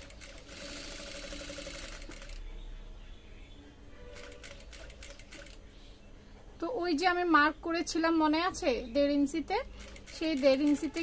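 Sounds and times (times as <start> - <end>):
sewing machine running: 0.0 - 2.4.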